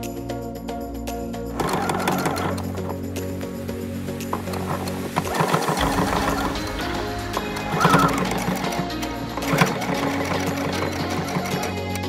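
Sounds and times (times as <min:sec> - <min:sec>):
background music: 0:00.0 - 0:12.0
sewing machine stitching: 0:01.6 - 0:03.0, 0:04.4 - 0:12.0.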